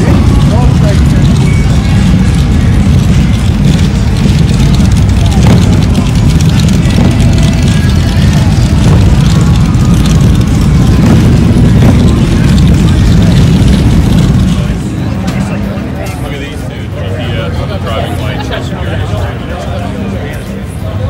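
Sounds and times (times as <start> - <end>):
motorcycle engines rumbling: 0.0 - 21.0
voices: 0.0 - 21.0.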